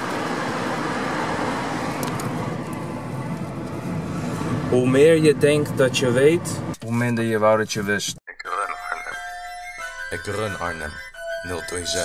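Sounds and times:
car road and tyre noise: 0.0s - 7.9s.

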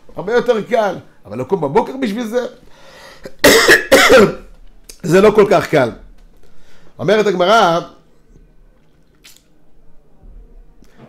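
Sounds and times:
man coughing: 3.2s - 4.5s.

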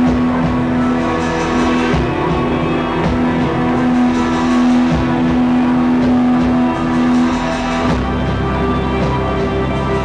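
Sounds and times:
distorted electric guitar: 0.0s - 10.0s
keyboards: 0.0s - 10.0s
live band playing: 0.0s - 10.0s.

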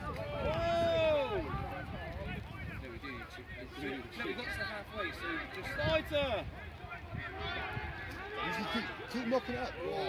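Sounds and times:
voices calling and talking: 0.0s - 10.0s.

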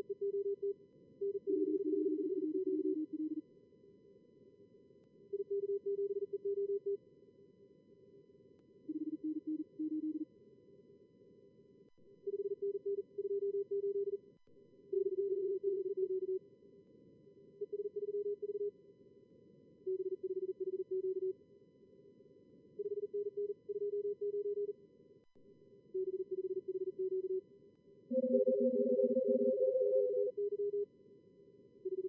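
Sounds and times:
morse code tones: 28.1s - 30.8s.

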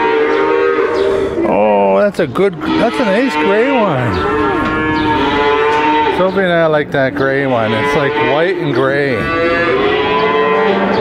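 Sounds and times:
calf mooing: 0.0s - 1.6s, 2.5s - 11.0s.

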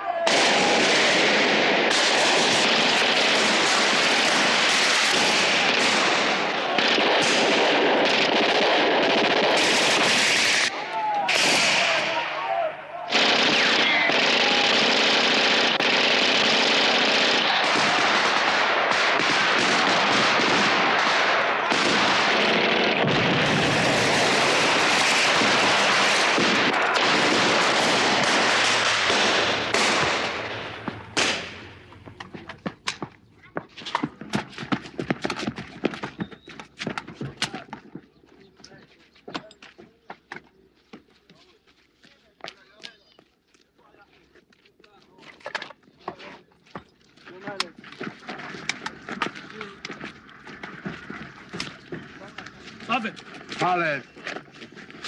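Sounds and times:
automatic gunfire: 0.3s - 10.7s, 13.1s - 31.8s.

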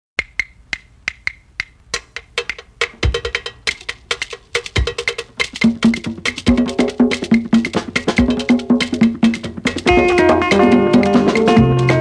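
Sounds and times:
sharp dry percussion clicks: 0.2s - 12.0s.

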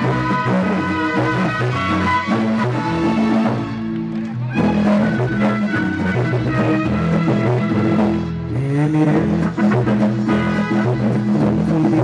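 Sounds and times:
guitar and bass music: 0.0s - 12.0s.

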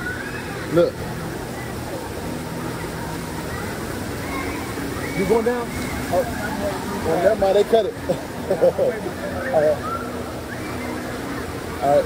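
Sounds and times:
faint voices: 0.0s - 12.0s
water rushing through slide: 0.0s - 12.0s.

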